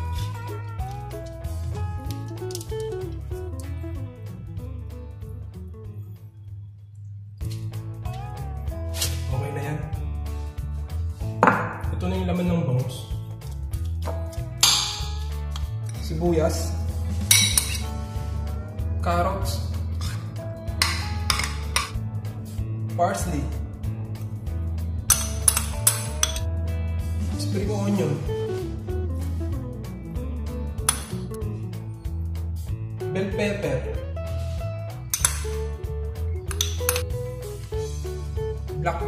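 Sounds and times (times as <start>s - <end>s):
background music: 0.0s - 39.0s
metal spoon clinking glass bowl: 17.3s - 17.9s, 20.8s - 22.0s, 25.1s - 26.4s, 36.5s - 37.0s.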